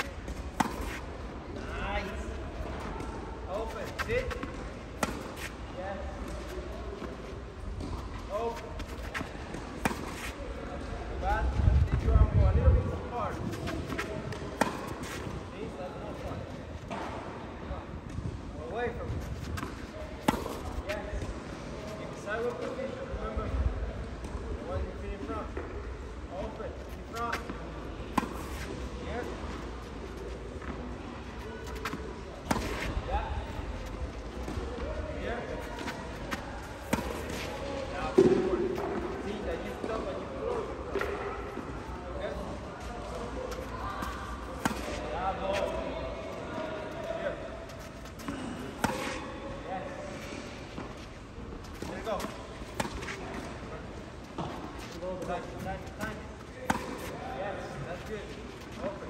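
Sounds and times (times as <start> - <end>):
racket hitting tennis ball: 0.0 - 1.1, 2.7 - 6.4, 7.0 - 10.4, 13.3 - 15.4, 19.3 - 21.6, 27.1 - 34.8, 35.4 - 40.1, 43.0 - 45.8, 47.7 - 49.3, 51.6 - 59.0.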